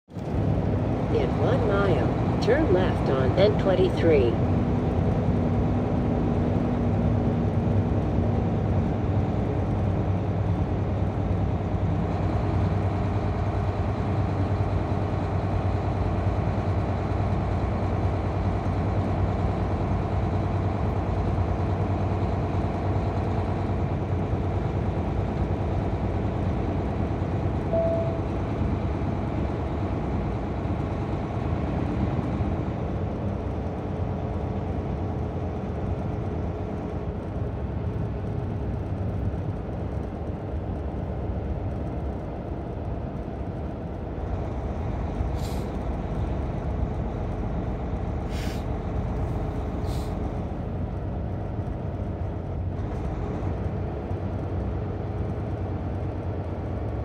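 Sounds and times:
engine hum: 0.1 - 57.0.

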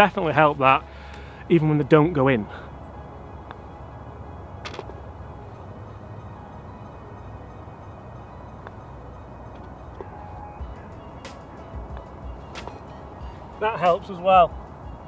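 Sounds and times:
faint background music: 0.0 - 15.0
putter striking golf ball: 4.6 - 5.0.

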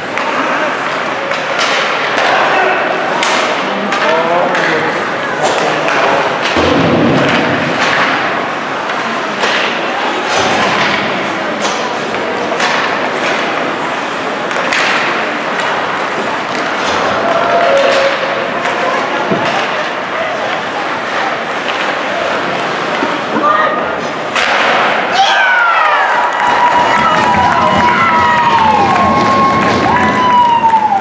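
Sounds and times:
stick and puck clacks: 0.0 - 25.1, 26.1 - 31.0
people shouting: 2.1 - 3.4, 17.0 - 19.1, 23.4 - 31.0
skates scraping ice: 7.2 - 25.3
crowd cheering: 14.4 - 31.0.

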